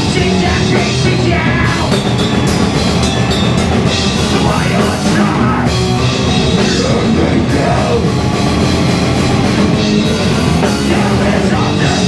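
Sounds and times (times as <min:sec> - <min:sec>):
distorted electric guitar: 0:00.0 - 0:12.0
drums and cymbals: 0:00.0 - 0:12.0.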